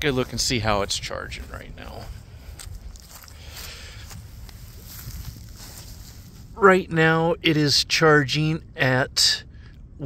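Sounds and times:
footsteps on dry grass: 0:00.0 - 0:06.9
low rumble: 0:00.0 - 0:10.0.

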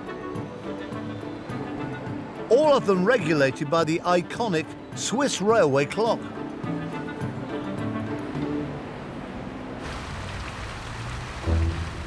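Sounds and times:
background music: 0:00.0 - 0:09.6, 0:11.4 - 0:12.0
fountain water splashing into basin: 0:09.8 - 0:12.0.

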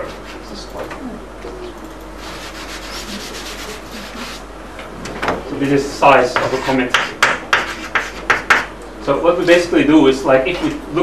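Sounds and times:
chalk scratching on chalkboard: 0:02.2 - 0:04.5, 0:06.3 - 0:08.7.

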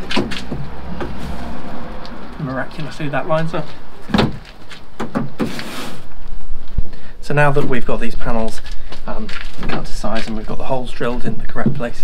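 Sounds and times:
low steady hum: 0:00.0 - 0:05.2.

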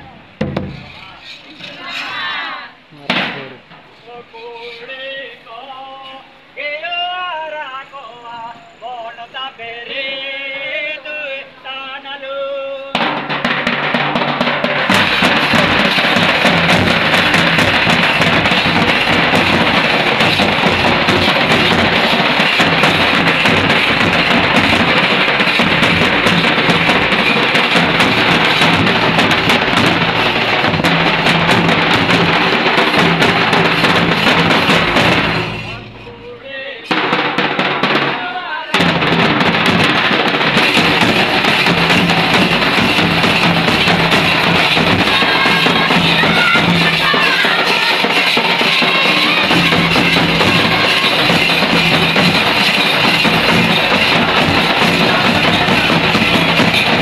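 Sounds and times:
drums beating fast rhythm: 0:00.0 - 0:01.9, 0:02.8 - 0:03.8, 0:12.9 - 0:57.0
folk dance music: 0:13.6 - 0:57.0.

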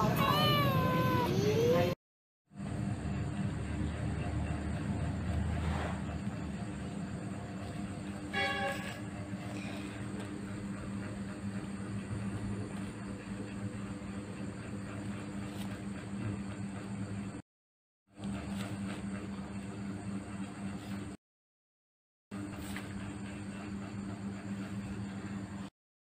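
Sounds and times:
low mechanical hum: 0:00.0 - 0:17.4, 0:18.1 - 0:21.2, 0:22.4 - 0:25.7
brief steady tone: 0:08.3 - 0:09.0.

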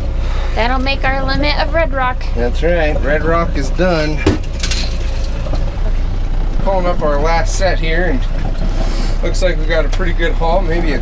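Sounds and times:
low rumble: 0:00.0 - 0:11.0
wire crab pot metal clinks: 0:04.1 - 0:05.6.

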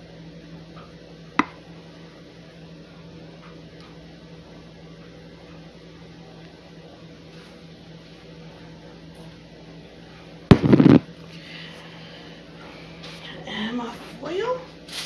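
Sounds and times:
low kitchen hum: 0:00.0 - 0:15.0.

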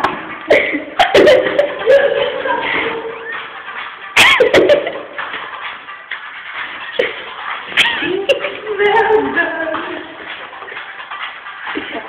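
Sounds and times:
muffled background music: 0:00.0 - 0:12.0.

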